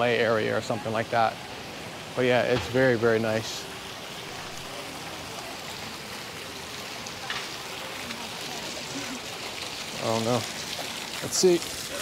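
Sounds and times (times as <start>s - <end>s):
fountain splashing into pool: 0.0s - 12.0s.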